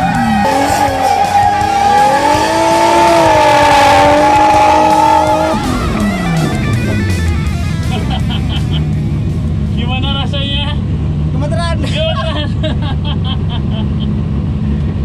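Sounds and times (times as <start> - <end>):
background music: 0.0 - 10.0
car engine running: 0.0 - 15.0.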